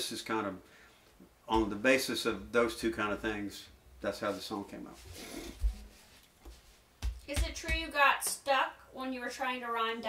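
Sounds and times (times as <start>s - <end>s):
soft low thumps: 7.0s - 7.9s.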